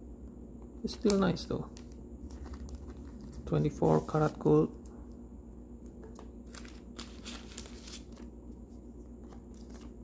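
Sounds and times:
plastic sleeve crinkling: 0.9s - 4.5s, 6.0s - 8.3s.

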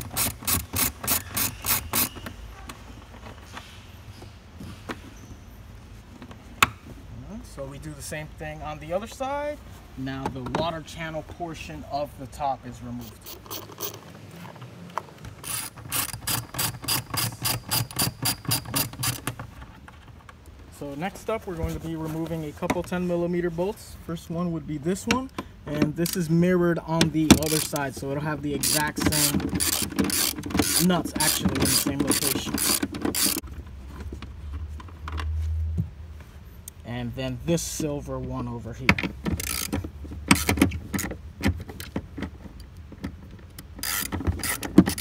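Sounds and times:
ratchet wrench clicking: 0.0s - 2.2s, 13.0s - 14.0s, 15.4s - 19.3s, 26.0s - 26.3s, 27.4s - 27.9s, 28.6s - 33.4s, 39.4s - 41.1s, 43.7s - 45.0s.

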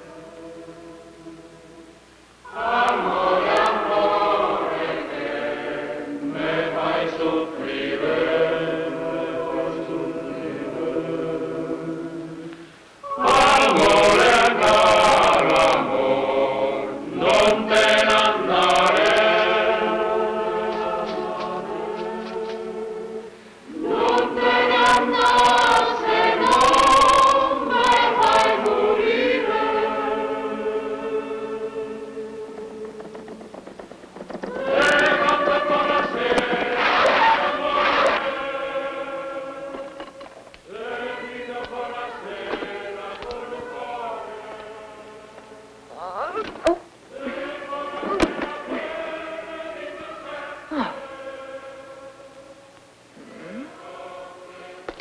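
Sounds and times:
choir singing held notes: 0.0s - 45.8s, 47.1s - 55.0s.

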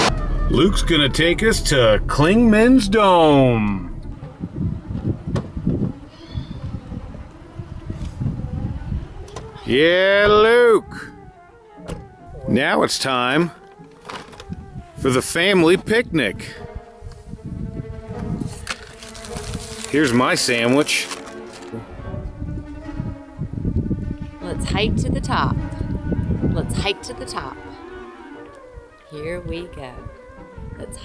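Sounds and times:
steady buzzing hum: 0.0s - 9.8s, 21.2s - 30.2s
road and wind noise in car: 2.1s - 9.7s.

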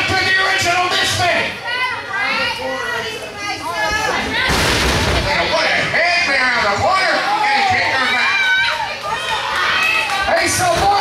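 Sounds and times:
crowd voices: 0.0s - 11.0s
children shouting: 7.2s - 10.3s.

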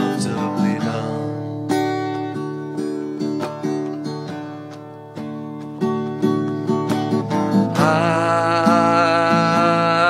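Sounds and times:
man singing: 0.0s - 1.6s, 7.5s - 10.0s
acoustic guitar strumming: 0.0s - 10.0s.

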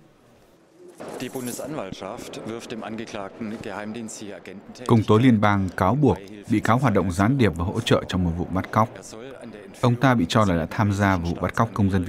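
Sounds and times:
man speaking: 1.0s - 12.0s.

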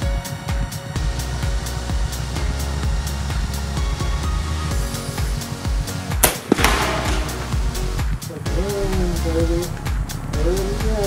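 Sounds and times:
background music with steady beat: 0.0s - 11.0s
air rifle firing crack: 6.2s - 8.1s.

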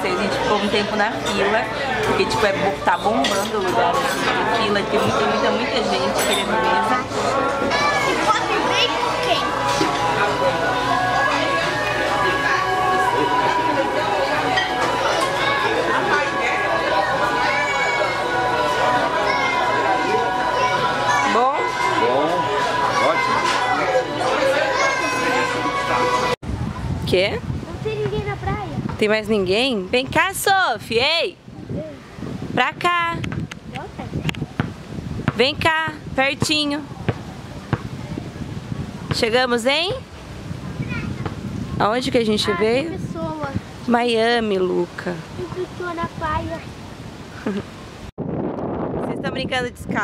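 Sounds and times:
chatter of many diners: 0.0s - 47.8s
outdoor background noise: 0.0s - 50.0s.

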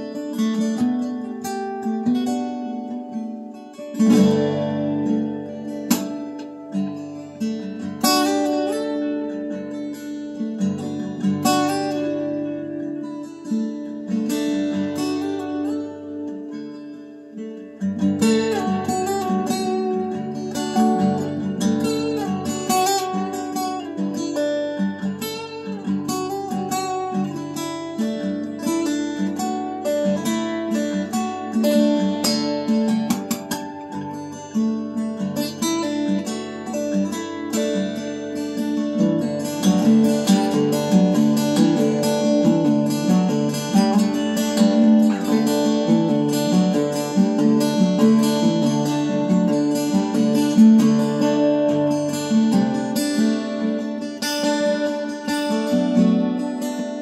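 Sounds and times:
fingerpicked acoustic guitar: 0.0s - 57.0s.

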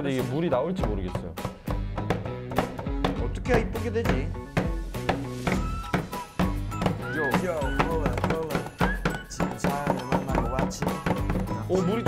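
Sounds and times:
music with steady beat: 0.0s - 12.0s
hammer tapping on cloth: 1.2s - 11.8s.

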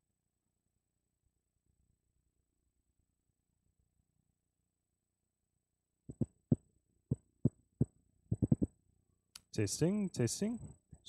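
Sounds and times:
finger tapping microphone: 6.1s - 8.7s.

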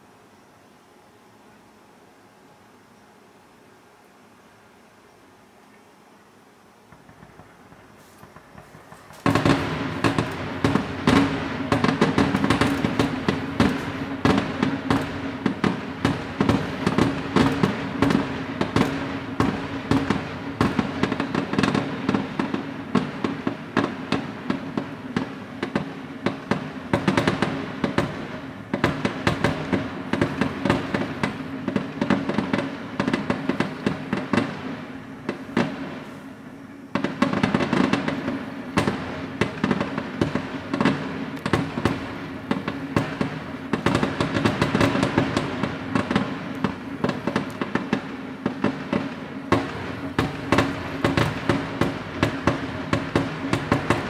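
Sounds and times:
fireworks bursting and crackling: 6.6s - 54.0s.

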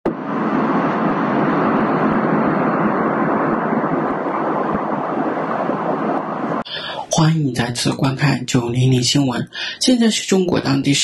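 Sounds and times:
jet aircraft rushing noise: 0.0s - 7.4s.

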